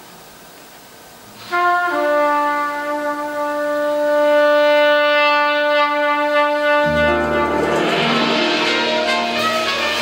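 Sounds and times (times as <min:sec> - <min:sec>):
trumpet holding long note: 0:01.4 - 0:10.0.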